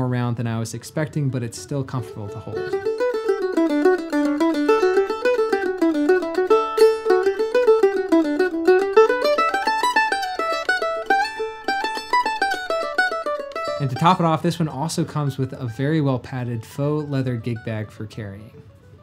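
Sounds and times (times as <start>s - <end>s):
mandolin melody: 0.0s - 19.0s.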